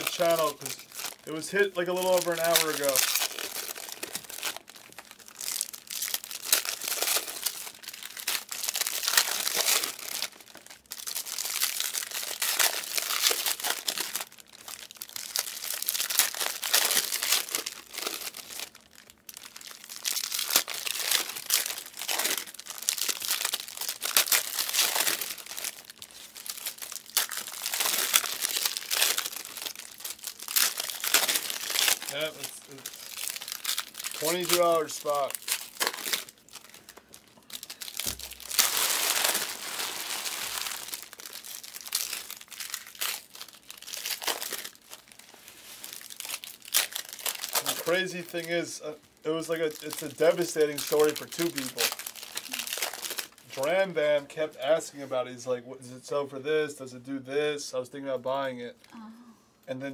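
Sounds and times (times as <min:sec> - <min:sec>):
card pack wrappers crinkling and tearing: 0:00.0 - 0:54.9.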